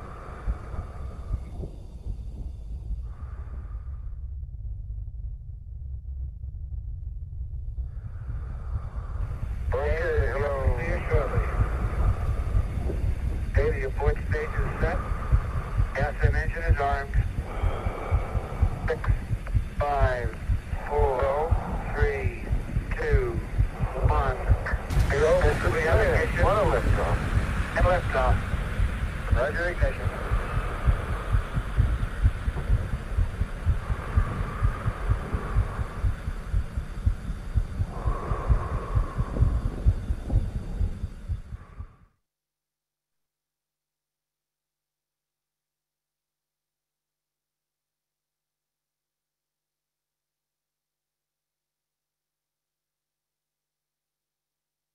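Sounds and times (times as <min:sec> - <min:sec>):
deep throbbing rumble: 0:00.0 - 0:42.1
faint hiss: 0:08.0 - 0:41.8
voice over radio: 0:09.7 - 0:12.0, 0:13.5 - 0:15.0, 0:16.0 - 0:17.3, 0:18.8 - 0:19.2, 0:19.8 - 0:28.5, 0:29.3 - 0:30.4.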